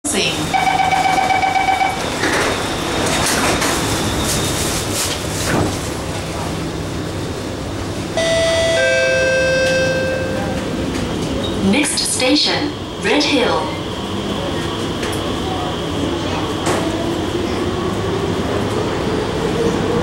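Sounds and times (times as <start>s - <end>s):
door closing warning tone: 0.5s - 2.1s, 8.2s - 11.6s
train doors sliding shut: 2.0s - 6.4s
falling two-note chime: 8.2s - 10.7s.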